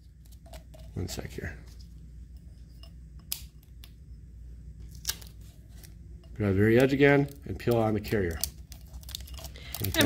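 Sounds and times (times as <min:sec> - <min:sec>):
low room hum: 0:00.0 - 0:10.0
plastic film crackling: 0:06.6 - 0:10.0.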